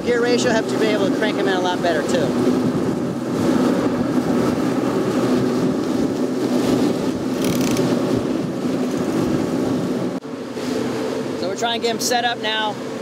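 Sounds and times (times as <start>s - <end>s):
outboard motors running: 0.0s - 13.0s
rushing wake: 0.0s - 13.0s
wind: 0.0s - 13.0s.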